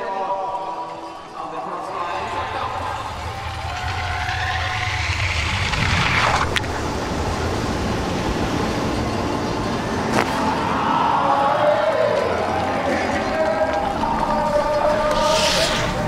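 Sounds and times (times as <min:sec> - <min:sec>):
rush of air: 0:02.1 - 0:08.8
skis rumbling and hissing on ice: 0:02.1 - 0:09.1, 0:14.7 - 0:16.0.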